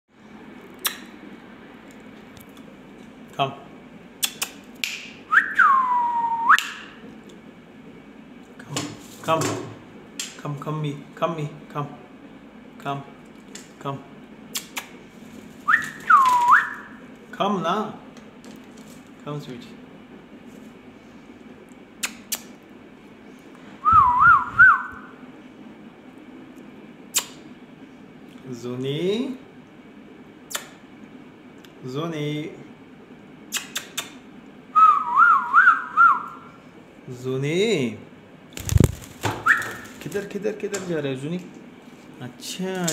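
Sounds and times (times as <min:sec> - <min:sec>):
swooping whistle: 0:05.3 - 0:06.9, 0:15.7 - 0:17.0, 0:23.8 - 0:25.2, 0:34.8 - 0:36.5, 0:39.4 - 0:39.9
warbling whistle: 0:39.4 - 0:39.9.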